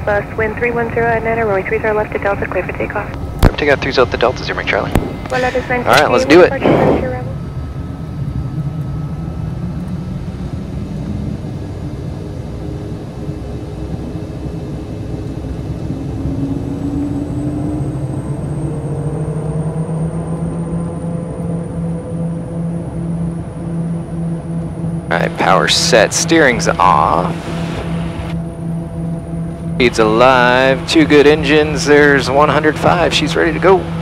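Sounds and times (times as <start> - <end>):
faint high whine: 0.0 - 34.0
turboprop engines spooling up: 0.0 - 34.0.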